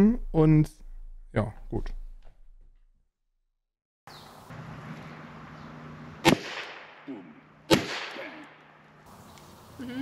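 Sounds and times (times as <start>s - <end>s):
harpoon gun firing crack: 6.2s - 7.1s, 7.7s - 8.8s.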